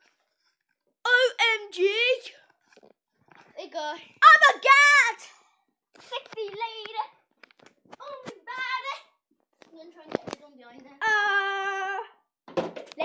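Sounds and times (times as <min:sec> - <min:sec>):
children talking and calling out: 0:01.1 - 0:02.4, 0:03.6 - 0:05.4.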